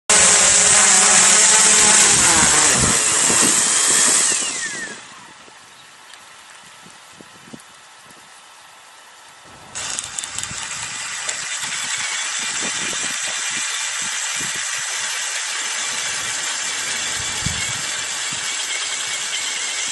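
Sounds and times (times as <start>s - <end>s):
auger motor drilling into soil: 0.1s - 5.5s, 9.5s - 19.9s
drone rotors whining: 0.1s - 5.6s, 9.4s - 19.9s.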